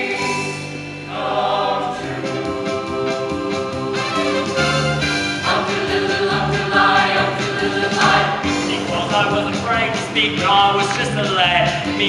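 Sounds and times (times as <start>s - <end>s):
choir singing in harmony: 0.0s - 9.4s
musical accompaniment: 0.0s - 12.0s.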